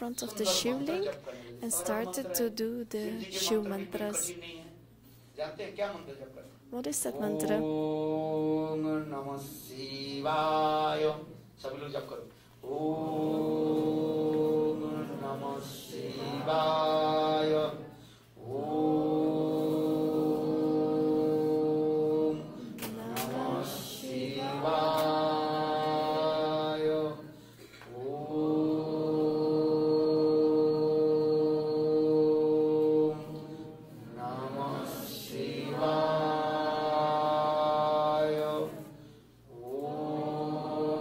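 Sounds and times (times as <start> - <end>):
person chanting: 12.6 - 41.0.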